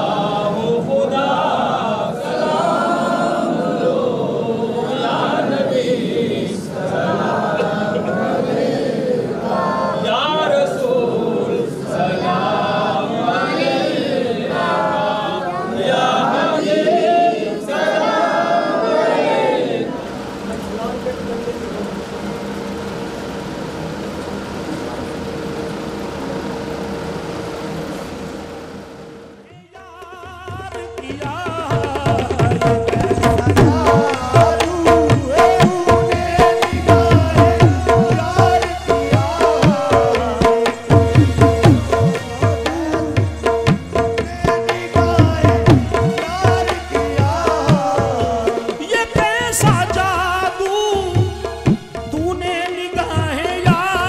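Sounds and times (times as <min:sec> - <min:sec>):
devotional singing with tabla: 0:00.0 - 0:18.6, 0:29.4 - 0:54.0
men chanting in unison: 0:00.0 - 0:20.0, 0:30.7 - 0:51.6
crowd of men praying: 0:00.0 - 0:22.2, 0:29.4 - 0:54.0
steady hum: 0:00.0 - 0:29.6, 0:30.5 - 0:54.0.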